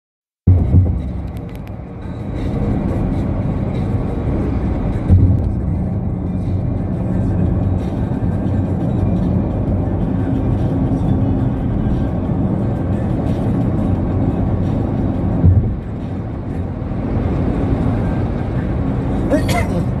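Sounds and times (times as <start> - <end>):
road and engine rumble: 0.4 - 20.0
low thump: 0.5 - 1.3, 5.0 - 5.6, 15.4 - 15.9
music playing: 0.5 - 20.0.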